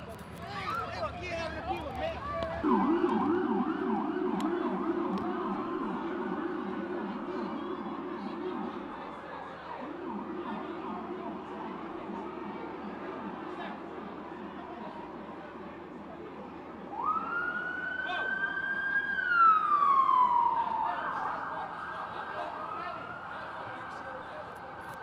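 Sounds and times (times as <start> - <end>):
police siren yelping: 1.8 - 14.2, 16.9 - 25.0.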